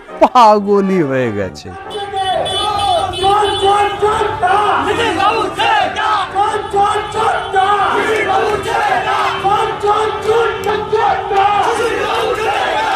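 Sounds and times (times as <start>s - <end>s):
crowd shouting: 1.7s - 12.9s.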